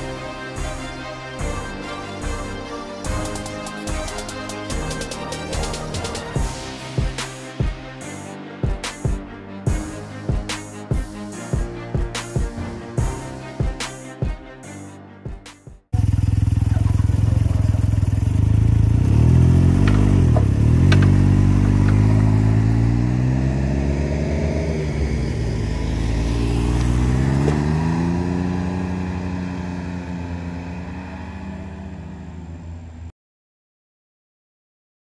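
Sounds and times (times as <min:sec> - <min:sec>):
music: 0:00.0 - 0:15.9
motorcycle engines running: 0:15.9 - 0:33.1.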